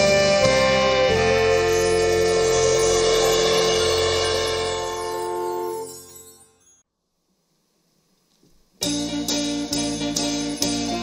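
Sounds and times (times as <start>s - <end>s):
big band holding a chord: 0.0s - 5.8s.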